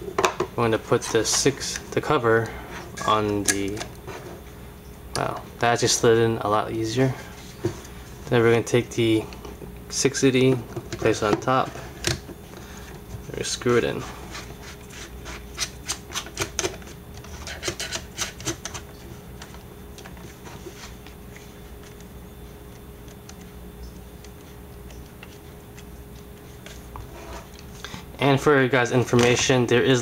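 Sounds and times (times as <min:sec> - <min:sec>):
rubbing and handling plastic: 0:10.3 - 0:28.2.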